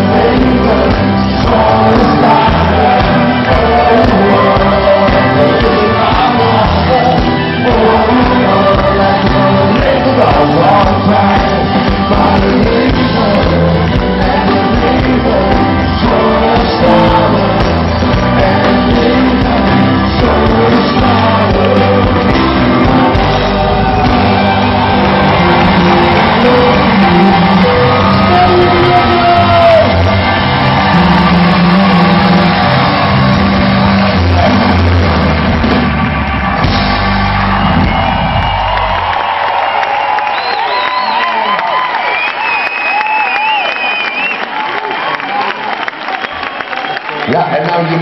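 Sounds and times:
a cappella group singing: 0:00.0 - 0:27.0
deep vocal bass line: 0:00.0 - 0:35.8
people whooping: 0:23.2 - 0:48.0.

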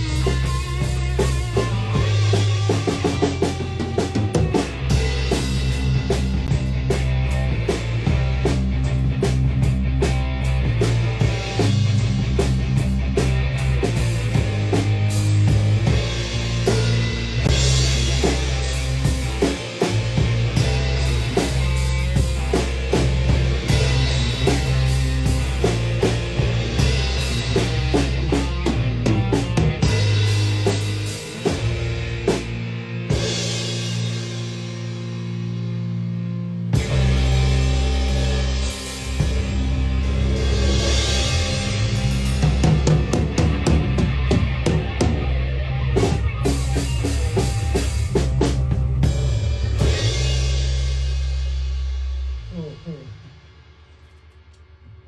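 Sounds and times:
electric guitar: 0:00.0 - 0:53.4
drum kit: 0:00.0 - 0:55.0
electric bass: 0:00.0 - 0:55.0.

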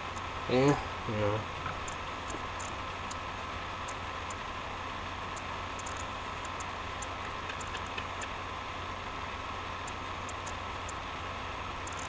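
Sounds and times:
faint short ticks: 0:05.3 - 0:08.4.

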